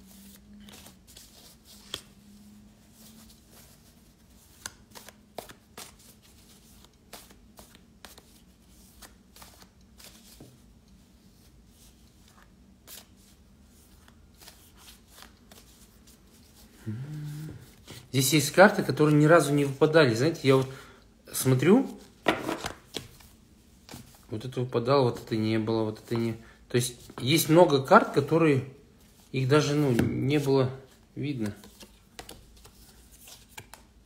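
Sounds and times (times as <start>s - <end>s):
cards being shuffled: 0.0s - 10.7s, 11.4s - 16.7s, 21.8s - 24.3s, 29.6s - 34.0s.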